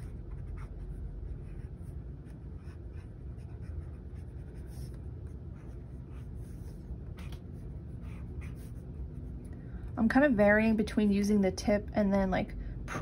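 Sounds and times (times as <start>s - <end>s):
brush pen scratching on paper: 0.0s - 9.4s.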